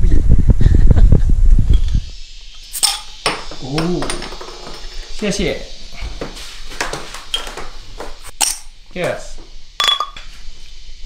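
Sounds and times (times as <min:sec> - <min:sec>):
glass bottles clinking together: 0:02.7 - 0:05.2, 0:06.9 - 0:07.7, 0:09.8 - 0:10.2
voices: 0:03.3 - 0:06.1.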